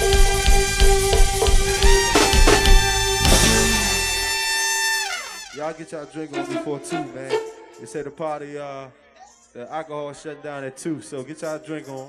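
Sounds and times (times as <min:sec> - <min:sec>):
live band final chord: 0:00.0 - 0:05.1.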